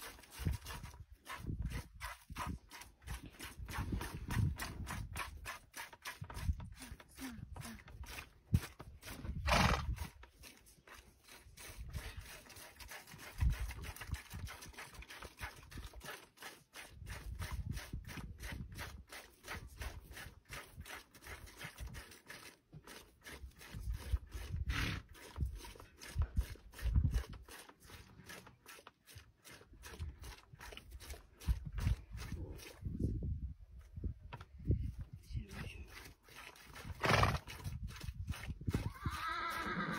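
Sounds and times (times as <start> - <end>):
hooves shifting on dirt: 0.0 - 39.9
horse snorting: 7.8 - 10.3, 23.2 - 28.5, 36.3 - 39.9.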